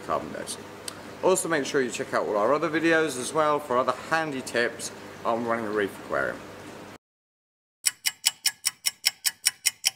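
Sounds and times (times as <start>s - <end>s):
fast clock-like ticking: 7.8s - 9.9s.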